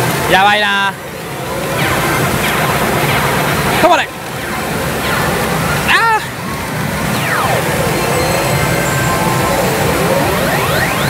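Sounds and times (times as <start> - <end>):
electronic machine music: 1.0 - 11.0
sweeping tone: 1.3 - 11.0.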